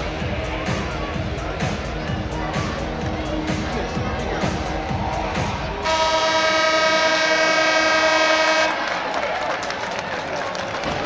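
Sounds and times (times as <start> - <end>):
arena horn blast: 5.8 - 9.0.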